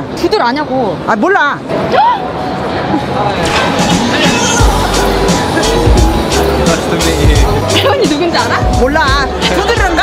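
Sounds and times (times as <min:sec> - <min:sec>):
music with pulsing bass beat: 0:03.7 - 0:10.0.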